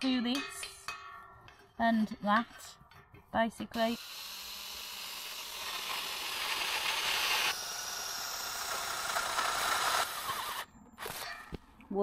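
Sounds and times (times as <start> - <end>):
power drill boring into metal: 4.0 - 11.3.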